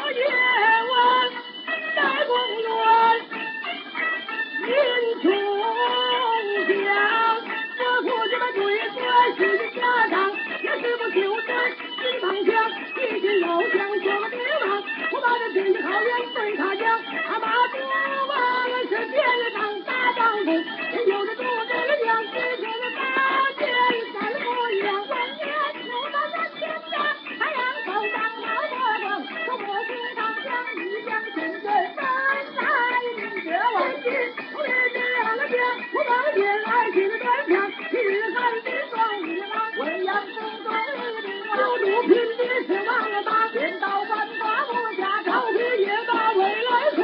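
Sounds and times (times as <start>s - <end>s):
opera accompaniment: 0.0s - 47.0s.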